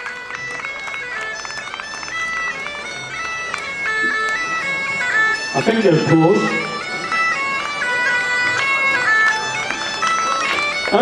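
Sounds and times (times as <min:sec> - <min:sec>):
bagpipe melody over drone: 0:00.0 - 0:11.0.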